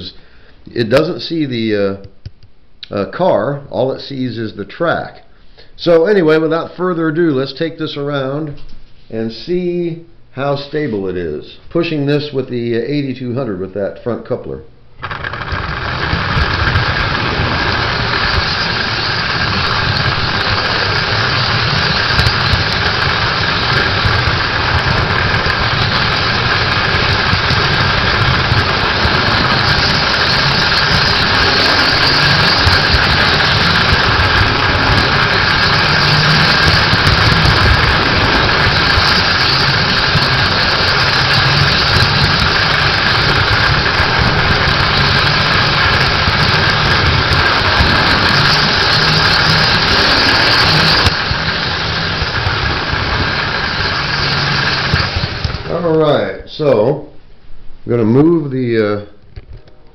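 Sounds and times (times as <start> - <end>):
high motor whine: 14.9 - 56.8
wheel and rail rumble: 15.0 - 56.2.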